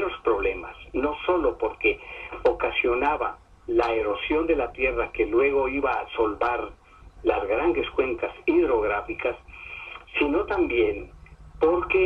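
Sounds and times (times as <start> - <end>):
man talking over telephone: 0.0 - 12.0
steady low hum: 0.0 - 12.0.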